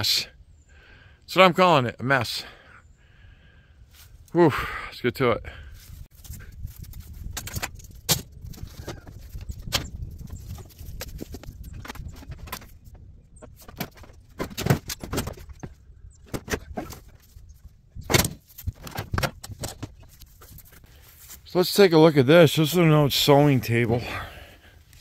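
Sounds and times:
scrap metal and wood clinking: 6.2s - 15.7s.

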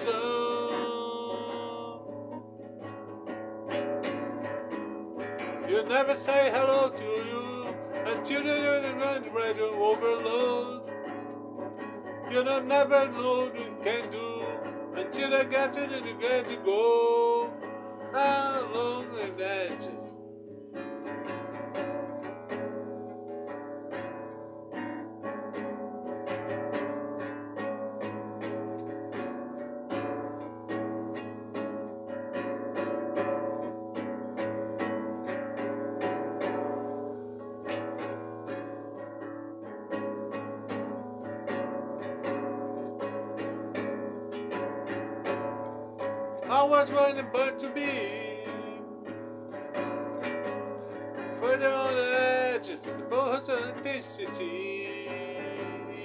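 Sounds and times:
person singing: 0.0s - 3.1s, 3.7s - 29.3s, 29.9s - 56.0s
classical guitar strummed: 0.0s - 56.0s.

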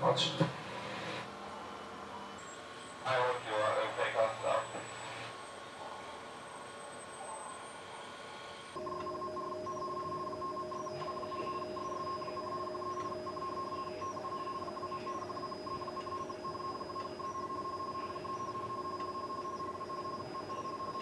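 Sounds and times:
electronic signal tones: 8.8s - 21.0s.

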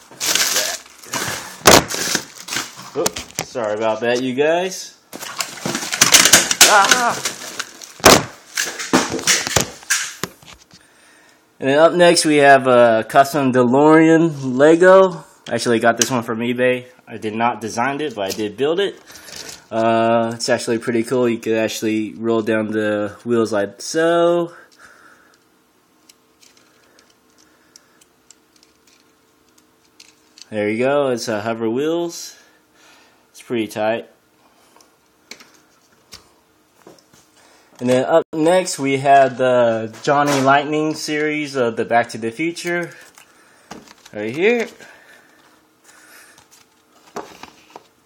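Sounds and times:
faint steady hum: 0.0s - 48.0s.

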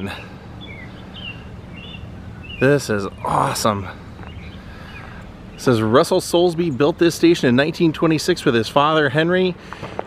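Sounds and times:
faint bird chirps: 0.0s - 5.9s
outdoor background noise: 0.0s - 10.0s.

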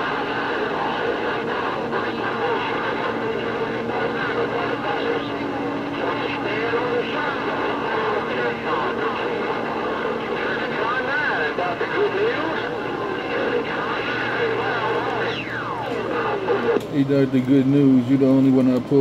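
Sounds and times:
warbling radio whistles: 0.0s - 16.8s
garbled overlapping radio voices: 0.0s - 19.0s
radio static: 0.0s - 19.0s.

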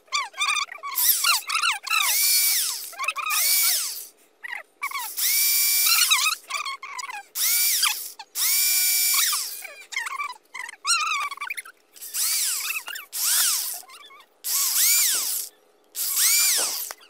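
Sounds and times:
electric drill motor whine: 2.0s - 4.1s, 5.1s - 6.2s, 7.4s - 9.6s, 12.0s - 13.8s, 14.5s - 17.0s.

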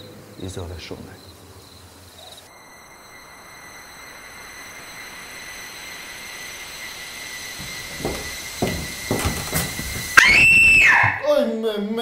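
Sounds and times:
steady high whine: 2.0s - 11.2s
shrill rising squeal: 2.5s - 11.2s
sharp knocks: 7.6s - 11.2s.

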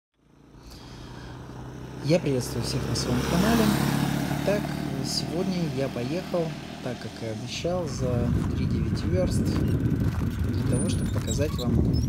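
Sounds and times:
motorcycle engine idling: 0.2s - 2.8s, 3.4s - 12.0s.

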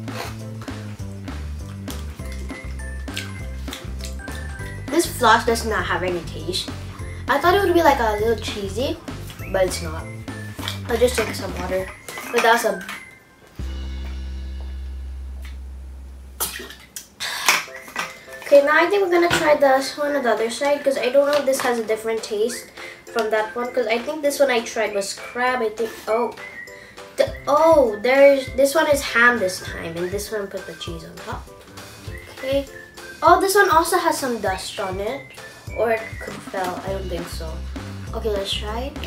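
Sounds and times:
background music with beat: 0.0s - 12.3s, 13.6s - 16.4s, 26.4s - 39.0s
steady low hum: 13.6s - 16.8s
breathy drinking noises: 22.7s - 23.1s.

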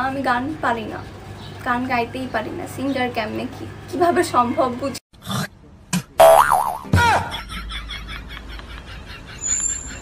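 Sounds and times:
cartoon boing: 6.0s - 7.2s.

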